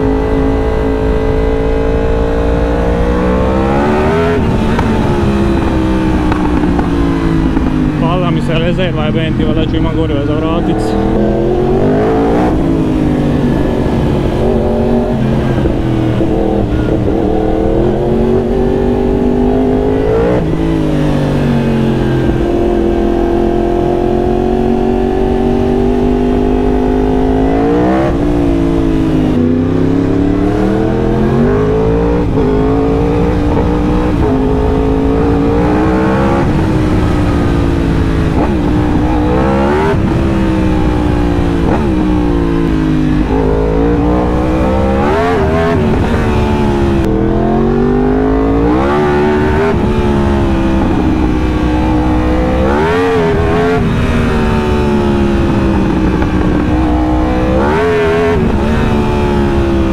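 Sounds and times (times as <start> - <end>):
motorcycle engine revving: 0.0 - 59.9.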